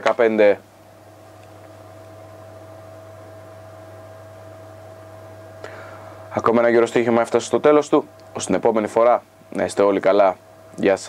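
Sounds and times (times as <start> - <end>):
low electrical hum: 0.0 - 11.0
thin steady whine: 0.0 - 11.0.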